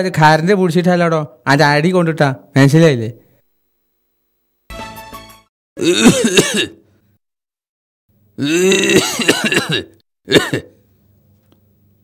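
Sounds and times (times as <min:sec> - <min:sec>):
man clearing his throat: 0:05.8 - 0:06.8, 0:08.4 - 0:10.8.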